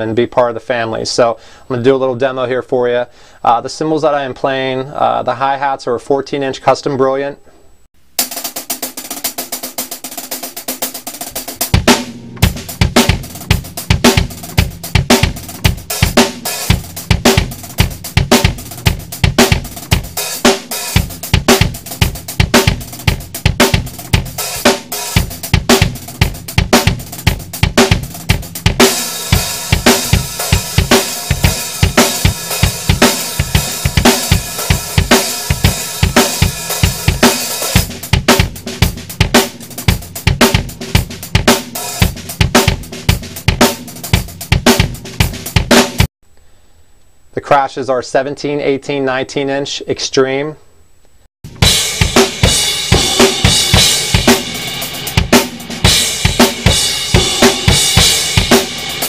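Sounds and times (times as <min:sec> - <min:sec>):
drum kit beat: 0:08.0 - 0:46.1, 0:51.4 - 0:59.0.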